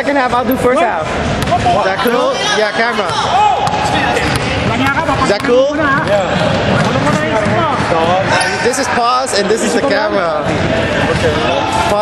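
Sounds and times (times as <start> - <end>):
voices talking: 0.0 - 12.0
players running: 3.0 - 8.3
basketball bouncing on wooden floor: 3.1 - 8.2.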